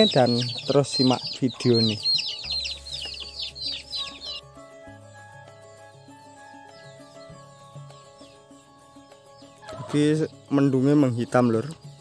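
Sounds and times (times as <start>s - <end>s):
chickens peeping: 0.0s - 4.4s, 6.3s - 11.8s
background music: 0.0s - 12.0s.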